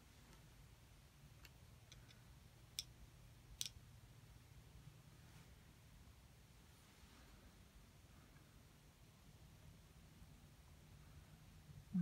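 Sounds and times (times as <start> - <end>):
faint low hum: 0.0 - 12.0
small sharp clicks: 1.4 - 3.0, 3.6 - 3.8.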